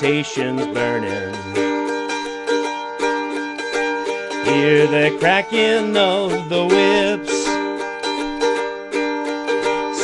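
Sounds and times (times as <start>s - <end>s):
plucked string instrument chords: 0.0s - 10.0s.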